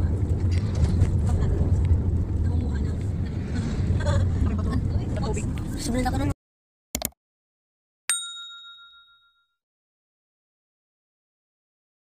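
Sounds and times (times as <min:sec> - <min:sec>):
notification bell ding: 0:08.1 - 0:09.6.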